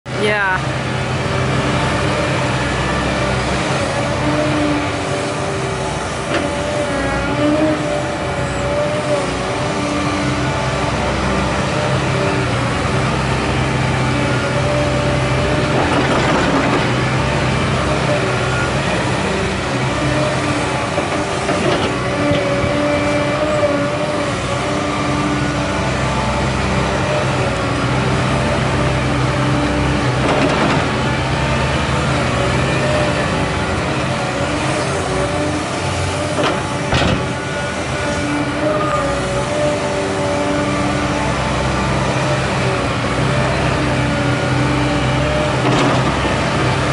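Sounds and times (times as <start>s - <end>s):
excavator diesel engine under load: 0.1s - 46.9s
hydraulic whine: 0.8s - 46.9s.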